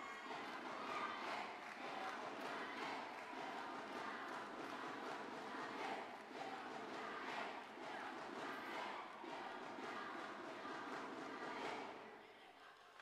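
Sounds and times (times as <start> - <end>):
indistinct crowd chatter: 0.0 - 13.0.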